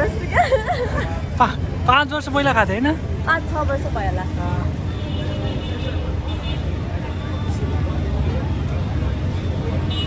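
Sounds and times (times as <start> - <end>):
bus rumbling from inside: 0.0 - 10.0.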